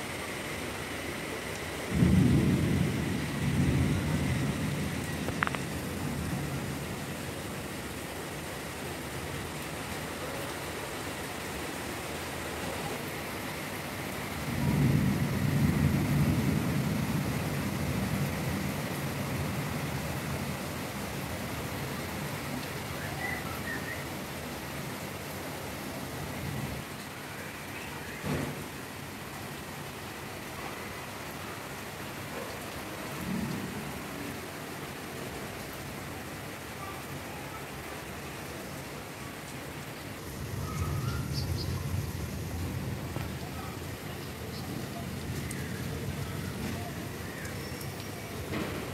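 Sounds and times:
steady rain: 0.0s - 48.9s
thunder rumble: 1.9s - 7.4s, 14.0s - 20.7s, 40.2s - 48.9s.

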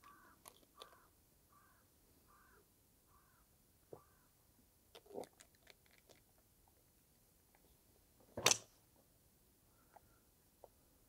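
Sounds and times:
crow cawing faintly: 0.0s - 4.4s.

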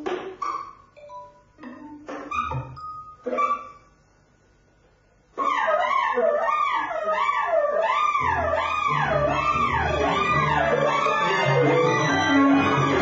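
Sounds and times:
live electronics: 7.1s - 13.0s.

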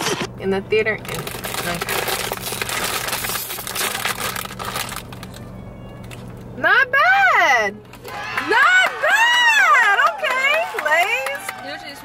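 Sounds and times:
foil chip bag crinkling: 1.0s - 6.2s.

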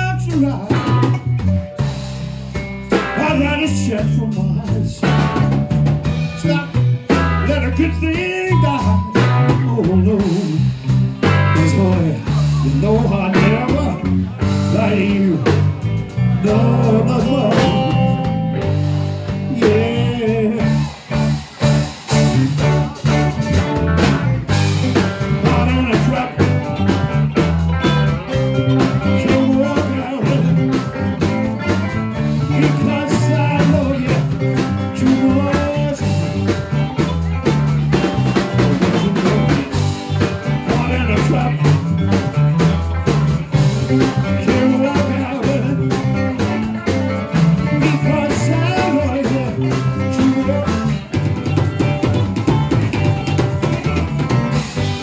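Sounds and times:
man singing into microphone: 0.0s - 1.0s, 3.1s - 5.4s, 6.3s - 10.7s, 11.4s - 15.7s, 16.3s - 18.6s, 19.4s - 20.9s, 25.3s - 26.8s, 28.6s - 30.9s, 32.4s - 36.5s, 40.6s - 41.9s, 44.2s - 46.2s, 47.7s - 51.0s
live rock band playing: 0.0s - 55.0s.

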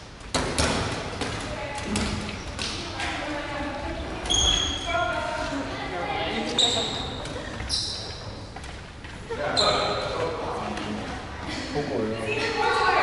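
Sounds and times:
balls bouncing on wooden floor: 0.2s - 3.2s
sneaker squeaks: 4.2s - 5.0s, 6.3s - 10.1s.

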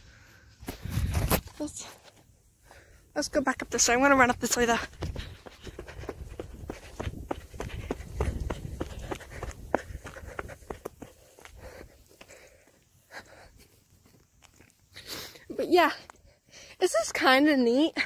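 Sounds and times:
footsteps: 3.4s - 15.1s.

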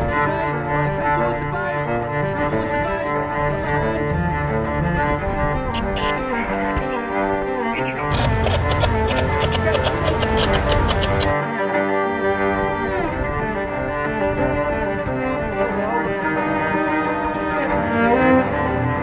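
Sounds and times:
bowed strings: 0.0s - 19.0s
percussive beat: 8.0s - 11.4s.

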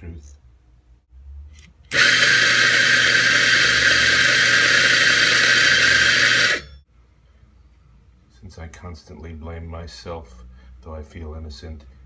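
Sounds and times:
coffee grinder grinding beans: 1.9s - 6.6s.

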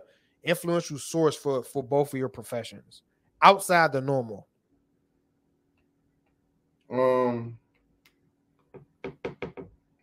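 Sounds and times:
knocks on a hard surface: 8.7s - 9.8s.

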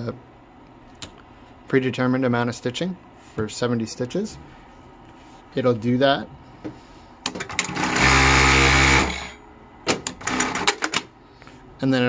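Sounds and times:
sewing machine whirring: 7.5s - 9.4s, 10.2s - 11.0s.

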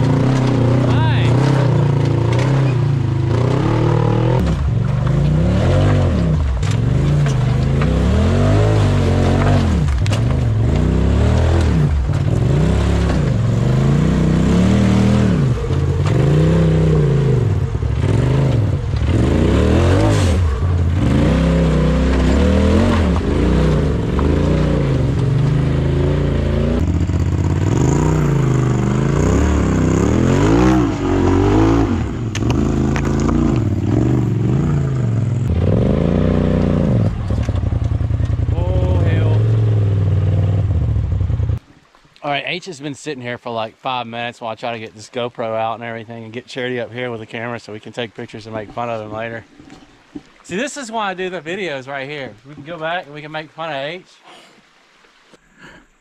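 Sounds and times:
utility vehicle engines revving: 0.0s - 41.6s.

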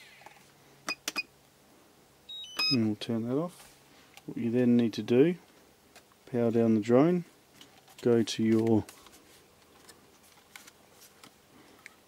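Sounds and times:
short high electronic beeps: 2.3s - 2.8s.

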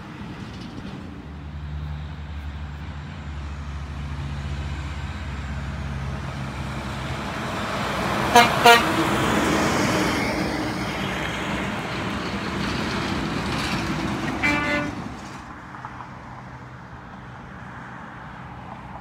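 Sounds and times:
road noise of passing vehicle: 0.0s - 19.0s
truck engine hum: 0.0s - 19.0s
truck horn toots: 8.3s - 9.1s, 14.3s - 15.0s.

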